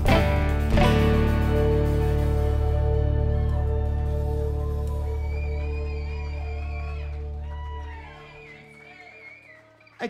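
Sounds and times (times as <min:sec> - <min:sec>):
guitar chord ringing: 0:00.0 - 0:05.3
held bass note: 0:00.0 - 0:06.2
bending guitar notes: 0:00.0 - 0:07.5.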